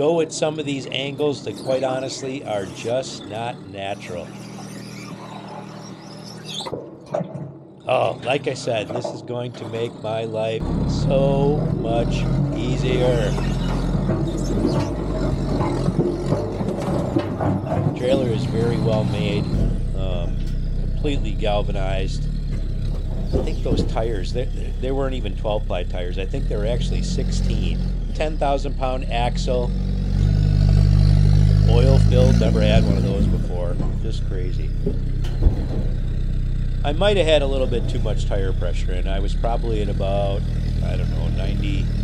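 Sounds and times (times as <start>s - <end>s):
diesel engine running: 0.0s - 6.6s, 7.9s - 42.0s.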